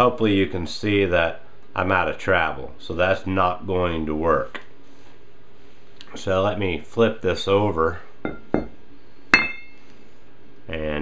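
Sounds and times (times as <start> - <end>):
metal knocks on concrete: 8.3 - 8.8.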